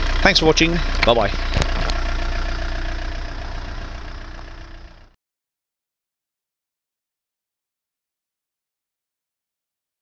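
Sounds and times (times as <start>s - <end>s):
diesel engine idling: 0.0s - 5.2s.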